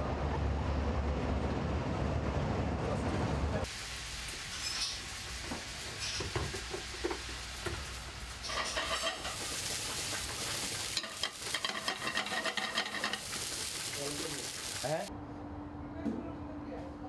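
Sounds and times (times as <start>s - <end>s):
rice sizzling in a hot pan: 3.6s - 15.1s.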